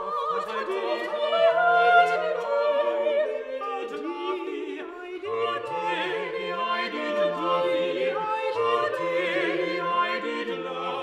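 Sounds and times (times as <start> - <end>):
vocal ensemble singing: 0.0 - 11.0.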